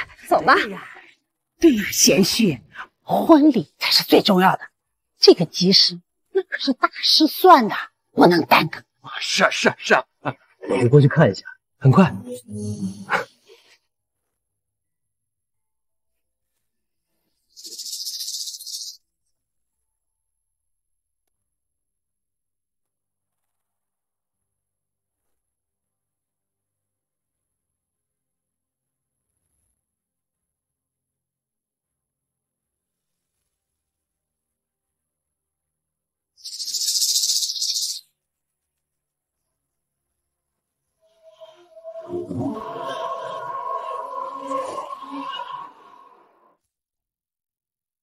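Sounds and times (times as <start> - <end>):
high fluttering hiss: 17.6 - 19.0
high fluttering hiss effect: 17.6 - 19.0, 36.5 - 38.0.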